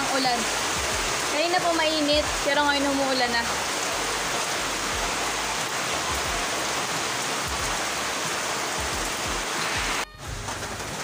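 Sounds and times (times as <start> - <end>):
heavy rain pouring: 0.0 - 11.0.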